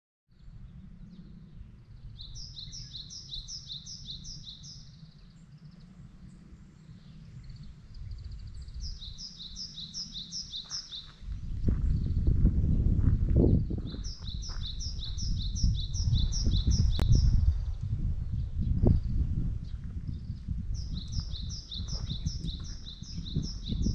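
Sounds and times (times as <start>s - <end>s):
low rumble on microphone: 0.3s - 23.9s
small bird singing: 0.4s - 12.4s, 13.4s - 23.9s.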